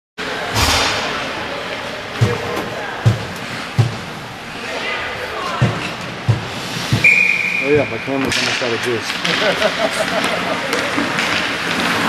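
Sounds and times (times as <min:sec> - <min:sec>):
voices echoing in arena: 0:00.2 - 0:11.2
short low thuds: 0:02.2 - 0:04.2, 0:05.6 - 0:07.1
skates scraping on ice: 0:08.2 - 0:12.0.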